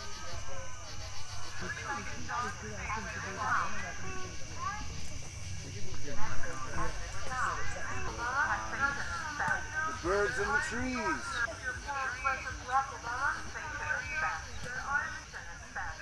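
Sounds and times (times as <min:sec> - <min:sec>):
people talking at once: 0:00.0 - 0:16.0.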